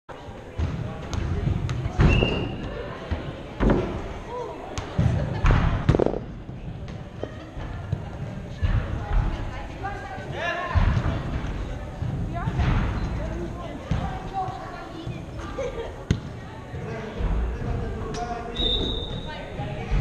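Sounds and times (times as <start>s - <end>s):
ball thumping: 4.8s - 7.1s, 13.8s - 14.6s.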